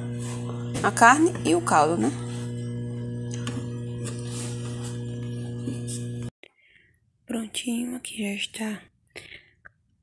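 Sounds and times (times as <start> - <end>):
buzzy low hum: 0.0 - 6.3.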